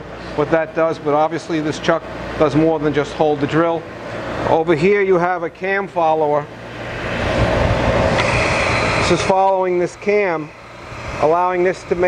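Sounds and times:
loud hiss of compressed air: 7.0 - 11.7.

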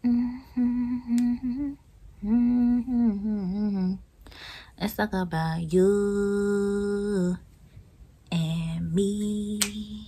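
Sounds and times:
woman humming a tune: 0.0 - 4.0.

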